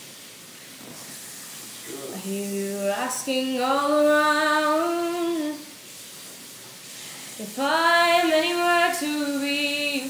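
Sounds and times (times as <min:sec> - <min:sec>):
faint hiss: 0:00.0 - 0:10.0
woman singing unaccompanied: 0:02.2 - 0:05.7, 0:07.4 - 0:10.0.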